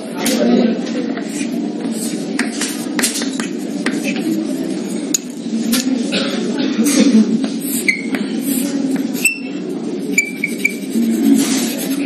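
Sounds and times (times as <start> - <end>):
chalk scratching on blackboard: 7.4 - 12.0
chalk squeaks: 7.6 - 12.0.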